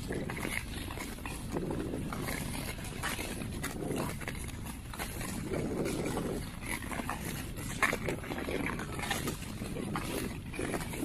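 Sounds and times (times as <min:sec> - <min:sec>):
skate blades scraping ice: 0:00.0 - 0:11.0
ski poles clicking on ice: 0:00.0 - 0:11.0.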